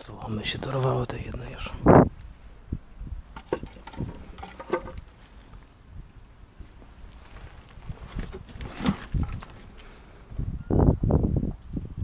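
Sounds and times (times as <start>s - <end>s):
knocks clicks and scrapes: 3.4s - 5.5s.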